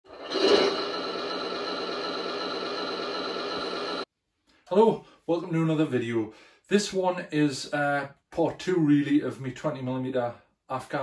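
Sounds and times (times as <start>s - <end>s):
drone of held tones: 0.1s - 4.1s.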